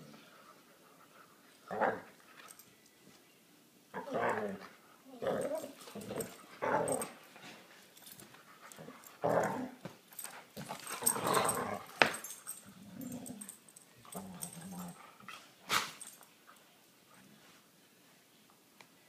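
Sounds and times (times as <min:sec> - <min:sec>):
dogs growling: 0:04.0 - 0:07.2, 0:08.7 - 0:09.8, 0:10.6 - 0:16.1.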